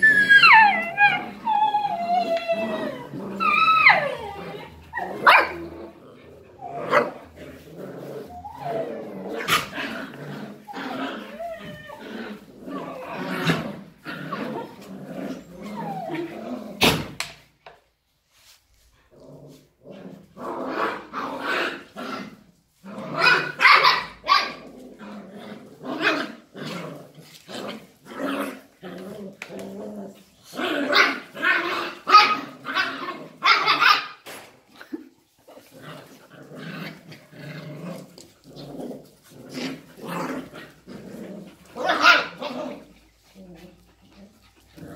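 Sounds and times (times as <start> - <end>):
puppies growling and barking: 0.0 - 17.8, 18.4 - 44.9.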